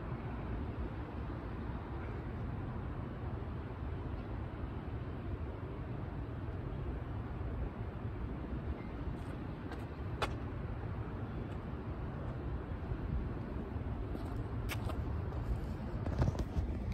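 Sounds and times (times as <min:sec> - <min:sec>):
low outdoor rumble: 0:00.0 - 0:16.9.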